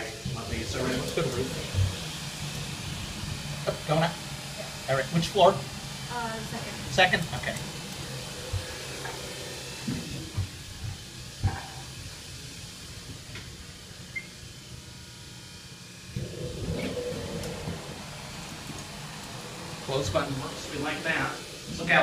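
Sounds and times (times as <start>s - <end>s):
elevator low hum: 0.0s - 22.0s
elevator doors sliding closed: 16.2s - 21.8s.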